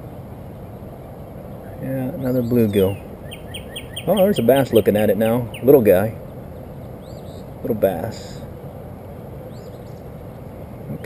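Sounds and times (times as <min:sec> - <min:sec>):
low outdoor rumble: 0:00.0 - 0:11.0
songbird chirping: 0:00.0 - 0:11.0.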